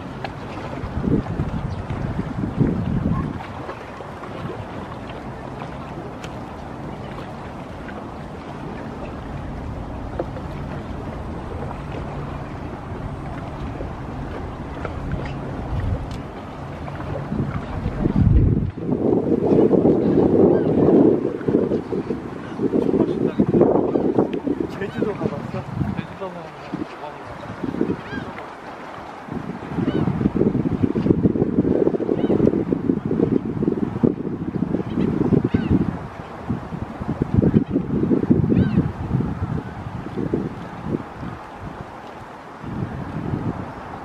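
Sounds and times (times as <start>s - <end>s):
wind buffeting microphone: 0.0s - 44.0s
low engine hum: 4.4s - 18.9s.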